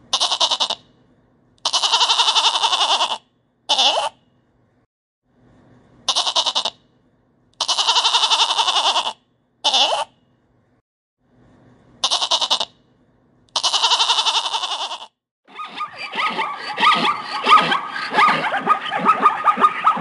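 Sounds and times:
goat kid bleating: 0.1s - 0.8s, 1.6s - 4.2s, 6.1s - 6.8s, 7.6s - 10.1s, 12.0s - 12.8s, 13.5s - 15.1s.

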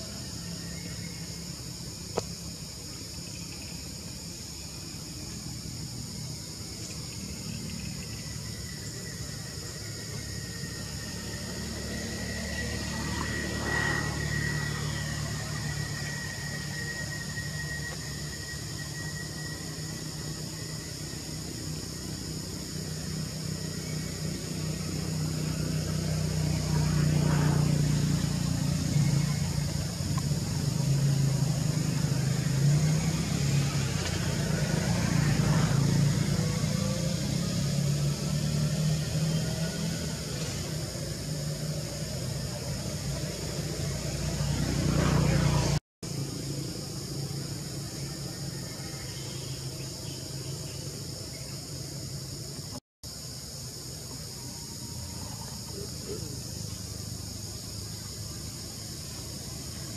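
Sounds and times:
insects buzzing: 0.0s - 59.9s.

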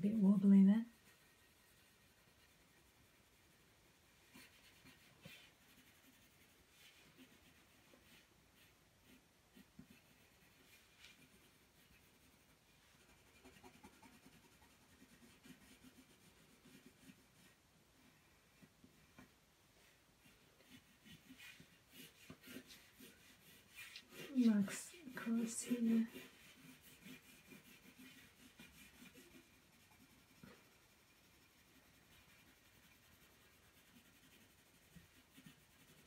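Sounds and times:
pencil scratching on paper: 0.0s - 17.6s, 18.6s - 36.0s.

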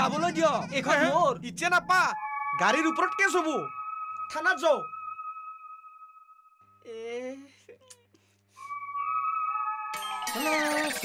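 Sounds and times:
steady high whistle-like tone: 1.7s - 6.6s, 8.6s - 10.7s.

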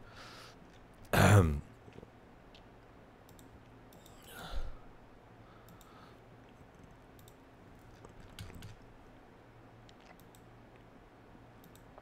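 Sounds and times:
faint computer mouse clicks: 3.2s - 4.3s, 5.6s - 6.0s, 6.8s - 7.4s, 10.0s - 10.5s, 11.6s - 11.9s.

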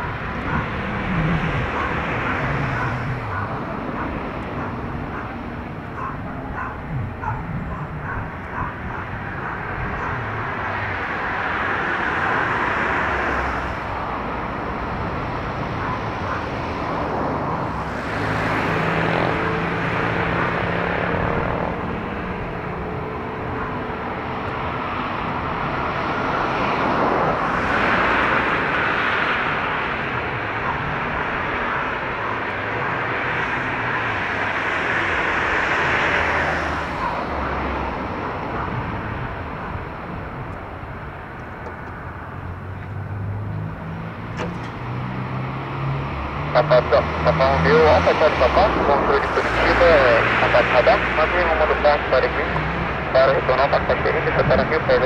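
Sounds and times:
jet engines rushing with whine: 0.0s - 55.0s.

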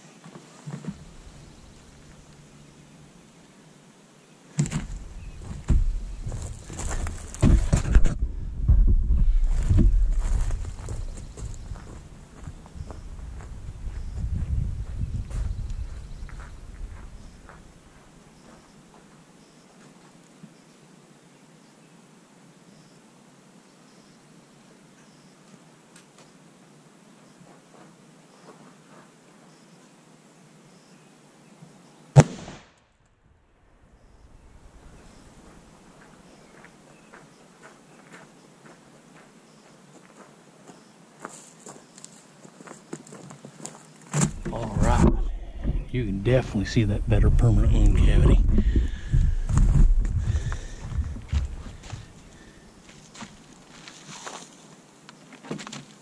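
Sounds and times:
knocking and low rumbling: 4.6s - 12.1s, 44.3s - 52.2s
rifle shot: 32.2s - 32.9s.

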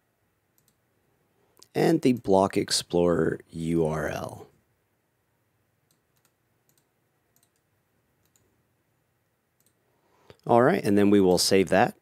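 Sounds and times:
computer mouse and keyboard clicks: 5.9s - 8.5s.

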